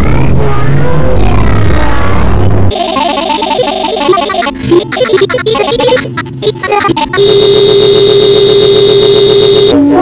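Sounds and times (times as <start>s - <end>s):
cartoon soundtrack: 1.2s - 10.0s
harsh electronic buzzing tone: 2.6s - 9.8s.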